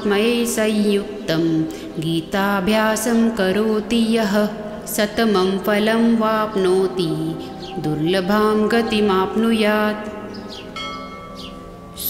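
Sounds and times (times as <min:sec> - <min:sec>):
soft background music: 0:00.0 - 0:12.0
bell-like chime ringing: 0:08.6 - 0:12.0.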